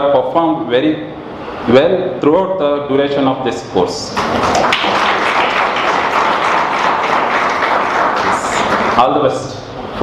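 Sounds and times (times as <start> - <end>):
audience applause: 4.2 - 9.1.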